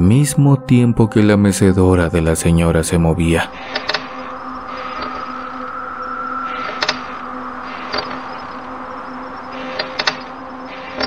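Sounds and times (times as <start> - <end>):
low drone of held tones: 0.0 - 11.0
sharp clicks or knocks: 3.7 - 4.1, 6.6 - 7.1, 9.6 - 10.3.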